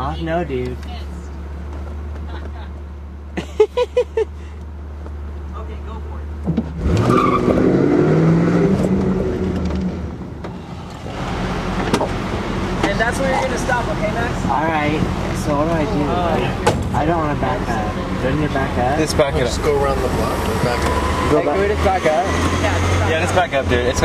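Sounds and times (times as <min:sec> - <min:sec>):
car engine revving: 0:06.1 - 0:24.0.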